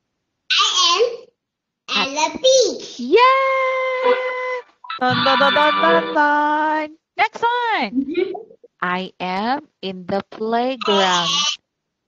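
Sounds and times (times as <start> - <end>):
woman cheering: 3.1 - 6.5, 10.8 - 11.4.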